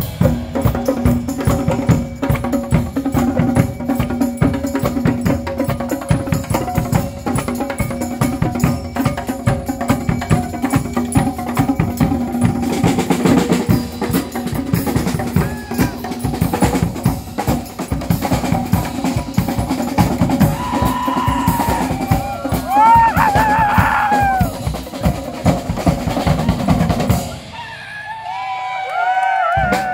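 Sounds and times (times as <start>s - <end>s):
drums playing fast groove: 0.0s - 27.5s
whooping shouts: 15.4s - 16.0s, 20.5s - 24.6s, 27.5s - 29.9s.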